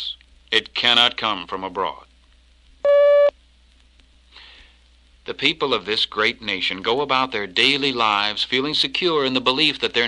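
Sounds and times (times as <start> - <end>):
electronic beep tone: 2.8 - 3.3.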